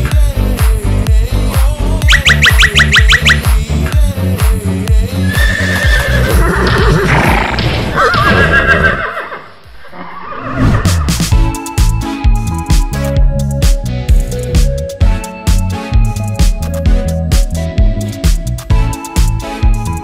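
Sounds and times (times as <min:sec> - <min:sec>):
electronic music with steady beat: 0:00.1 - 0:05.1, 0:10.9 - 0:20.0
quick rising chirps: 0:02.1 - 0:03.5, 0:09.1 - 0:11.4
horse whinny sound effect: 0:05.2 - 0:11.2.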